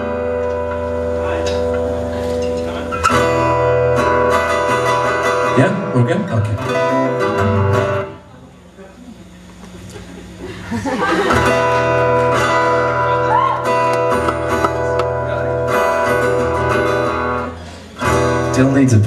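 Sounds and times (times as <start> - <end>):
acoustic guitar strummed chord: 0.0 - 8.2, 11.3 - 19.0.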